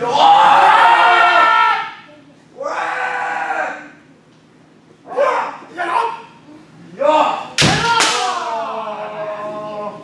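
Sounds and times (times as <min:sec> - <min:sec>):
people shouting: 0:00.0 - 0:04.0, 0:07.0 - 0:10.0
bamboo sword striking armour: 0:07.6 - 0:08.3.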